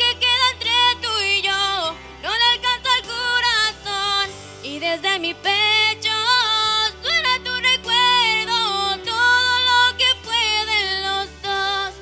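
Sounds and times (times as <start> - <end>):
sustained backing chords: 0.0 - 12.0
woman singing pop ballad: 0.0 - 12.0.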